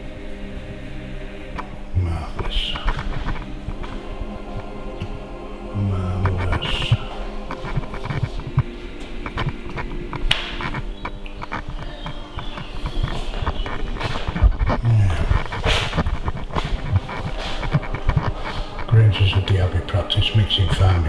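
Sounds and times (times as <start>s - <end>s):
low electrical hum: 0.0s - 21.0s
microphone crackling and popping: 1.4s - 21.0s.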